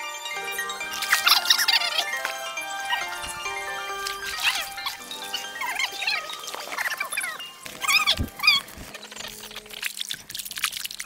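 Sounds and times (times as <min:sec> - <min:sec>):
bird chirping: 0:00.4 - 0:09.8.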